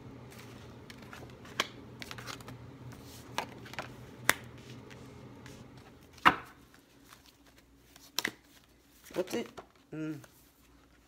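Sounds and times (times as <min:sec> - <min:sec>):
cards being shuffled: 0:00.2 - 0:11.0.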